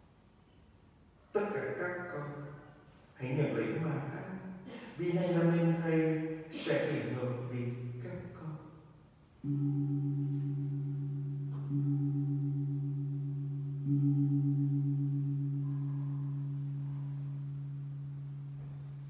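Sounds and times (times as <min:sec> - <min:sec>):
deep-toned bell ringing: 0:09.4 - 0:19.0.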